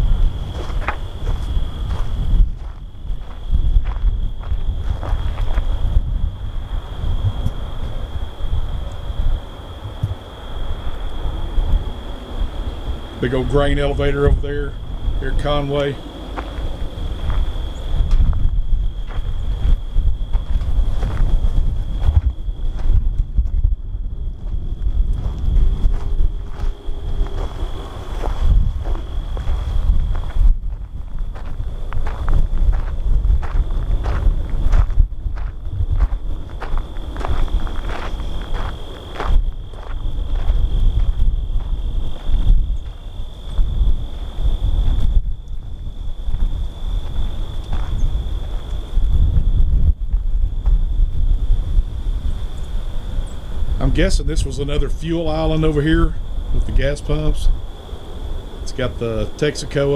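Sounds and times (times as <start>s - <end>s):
footsteps on dry grass and gravel: 0.0s - 52.9s
wind buffeting microphone: 0.0s - 59.9s.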